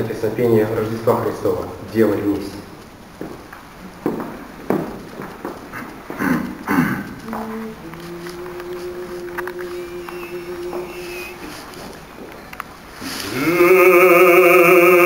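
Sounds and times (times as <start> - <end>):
shuffling: 2.3 - 13.6
longer low held note: 7.2 - 12.2.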